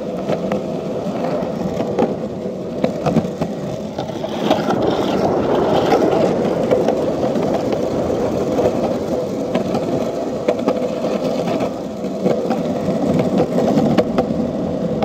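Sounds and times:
skateboard wheels rolling on concrete: 0:00.0 - 0:15.0
wheels clicking over cracks: 0:00.0 - 0:15.0.

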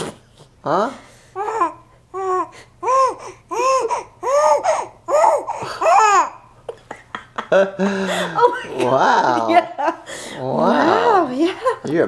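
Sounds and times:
infant babbling: 0:01.4 - 0:06.4.

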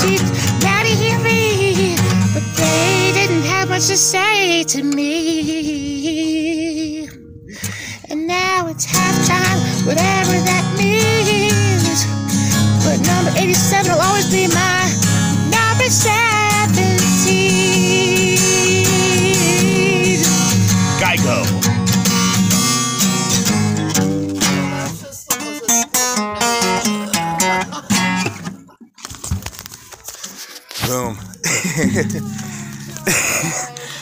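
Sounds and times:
person singing: 0:00.0 - 0:07.2, 0:12.8 - 0:20.5
strummed acoustic guitar: 0:00.0 - 0:34.0.

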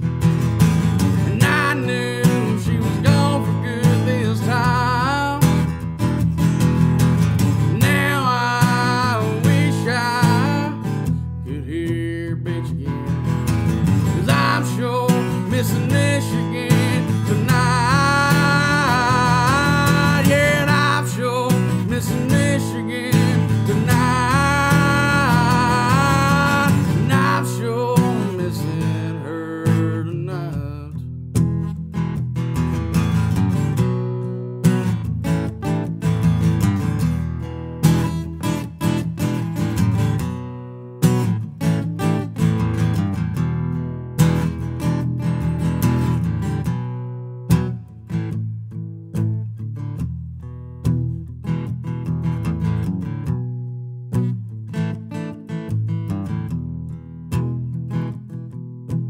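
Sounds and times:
acoustic guitar strumming chords: 0:00.0 - 0:59.0.

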